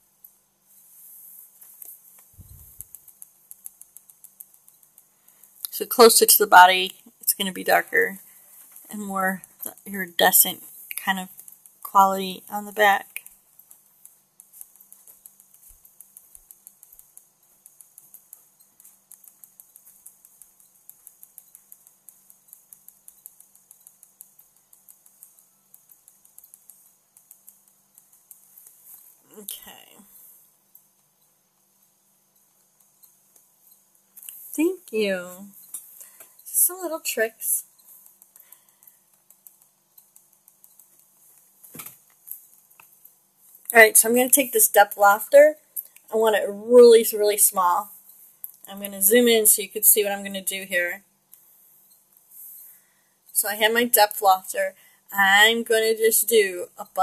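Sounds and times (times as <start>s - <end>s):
faint low hum: 0.0s - 57.0s
stylus tapping on tablet: 1.7s - 5.7s, 13.1s - 29.1s, 37.6s - 43.6s.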